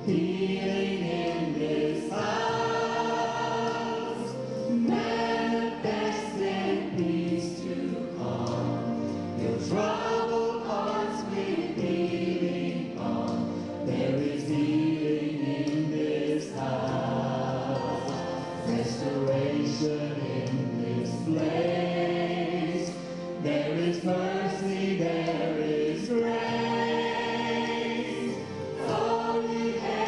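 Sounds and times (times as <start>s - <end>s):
choir singing held chords: 0.0s - 30.0s.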